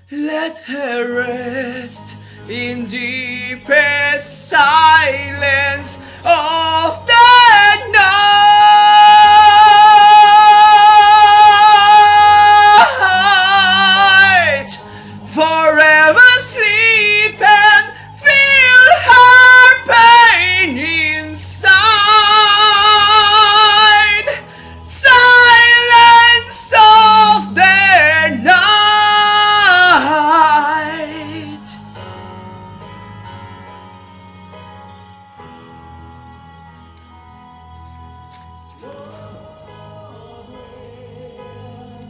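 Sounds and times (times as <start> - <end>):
faint backing music: 0.0 - 42.0
man singing rock vocal: 0.1 - 31.8
singer breathing: 2.1 - 2.5, 6.0 - 6.3, 14.8 - 15.3, 17.9 - 18.2, 24.4 - 24.9.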